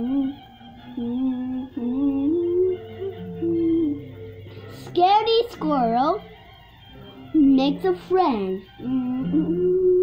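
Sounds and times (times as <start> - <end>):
girl humming a tune: 0.0 - 5.0, 8.6 - 10.0.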